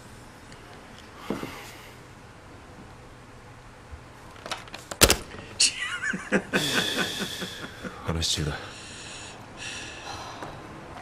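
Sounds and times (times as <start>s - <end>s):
sharp clicks: 4.9s - 5.5s
voices talking: 5.6s - 9.8s
man sighing: 6.5s - 10.5s.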